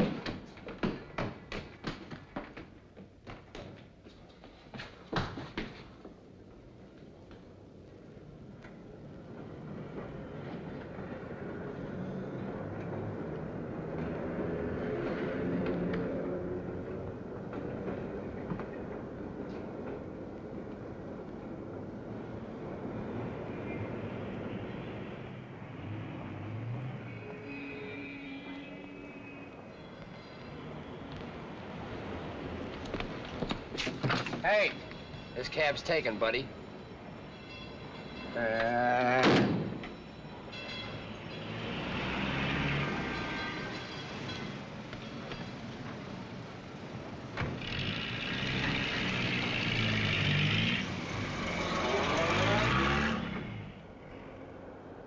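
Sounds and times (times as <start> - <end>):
city street traffic noise: 0.0 - 55.0
car horns honking: 27.0 - 29.7, 37.3 - 38.8, 40.5 - 41.5, 42.7 - 45.5.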